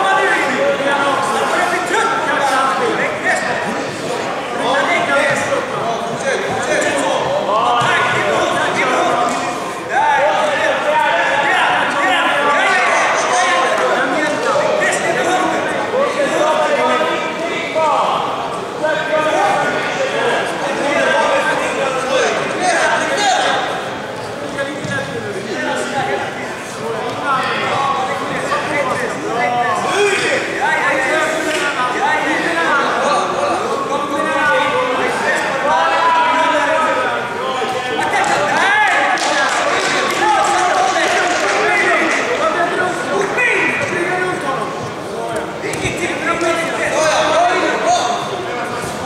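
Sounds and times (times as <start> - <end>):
voices calling out in echoing hall: 0.0 - 49.0.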